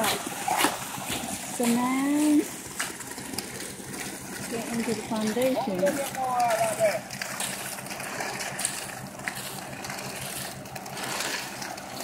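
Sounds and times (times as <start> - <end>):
concrete truck running: 0.0 - 12.0
shovels working through concrete: 0.0 - 12.0
wet concrete sliding down chute: 0.0 - 12.0.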